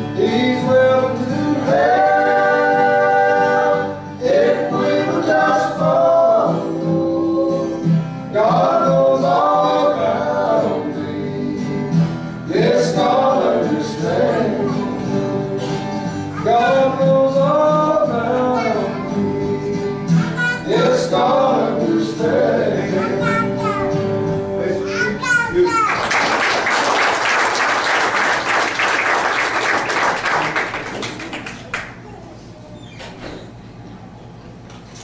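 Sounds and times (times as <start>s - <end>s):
men singing gospel in harmony: 0.0s - 23.4s
guitar accompaniment: 0.0s - 27.2s.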